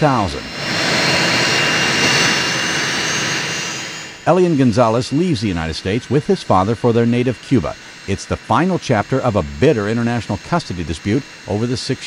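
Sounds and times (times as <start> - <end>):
jet engines running: 0.0 - 12.0.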